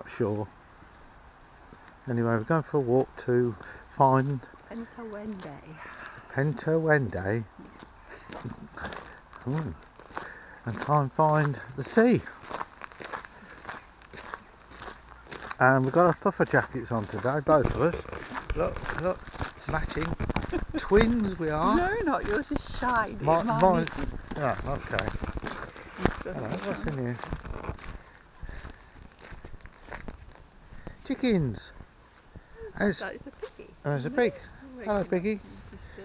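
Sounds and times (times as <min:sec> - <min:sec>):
footsteps on gravel: 0:03.5 - 0:06.3, 0:07.6 - 0:32.3.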